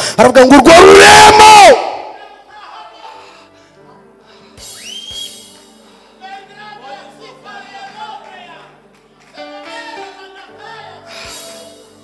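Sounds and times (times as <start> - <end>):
man shouting into microphone: 0.0 - 2.9.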